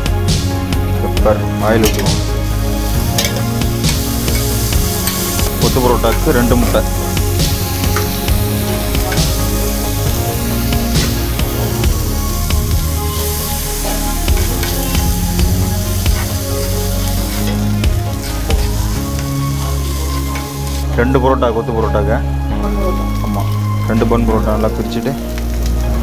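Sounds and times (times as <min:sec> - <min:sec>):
food sizzling on a griddle: 0:00.0 - 0:21.0, 0:22.6 - 0:26.0
background music: 0:00.0 - 0:26.0.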